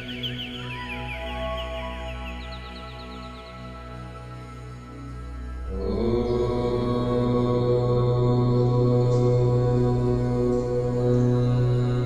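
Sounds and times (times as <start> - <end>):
deep chant-like drone: 0.0 - 12.0.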